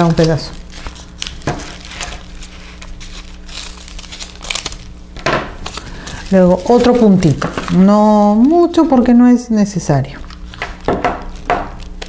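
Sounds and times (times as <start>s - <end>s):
paper crinkling: 0.0s - 9.2s, 10.1s - 12.0s.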